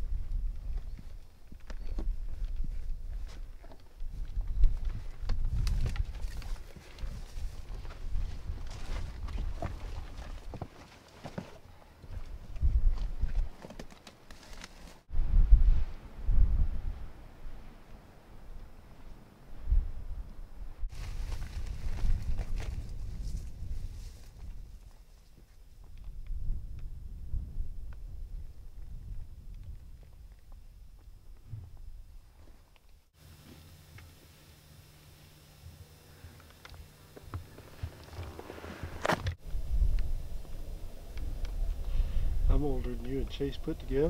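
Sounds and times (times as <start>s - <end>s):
wind rumbling on microphone: 0.0s - 10.6s, 12.0s - 13.6s, 15.1s - 25.0s, 25.6s - 32.4s, 37.6s - 44.0s.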